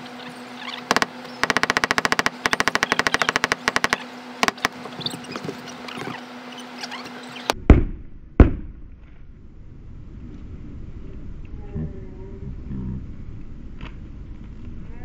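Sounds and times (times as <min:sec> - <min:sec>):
rapid mechanical clicking: 0:00.9 - 0:04.8.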